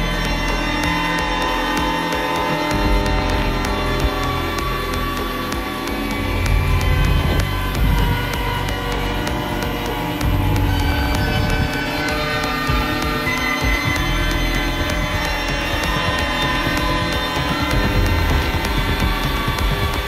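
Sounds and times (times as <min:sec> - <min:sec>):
techno with heavy bassline: 0:00.0 - 0:20.0.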